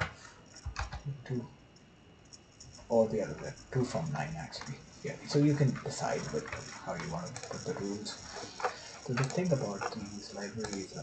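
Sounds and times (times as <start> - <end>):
computer keyboard keystrokes: 0.6 - 1.1, 6.1 - 11.0.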